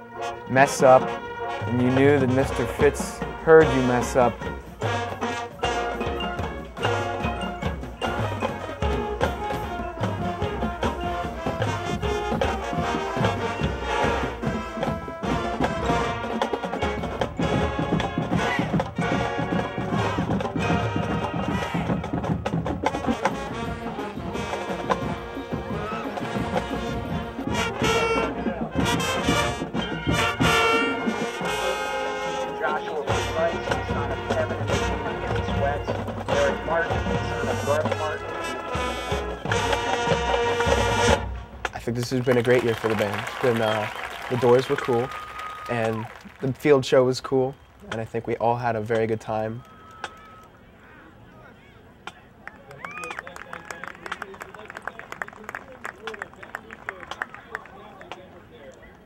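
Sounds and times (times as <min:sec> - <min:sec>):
marching band music: 0:00.0 - 0:50.6, 0:52.3 - 0:58.4.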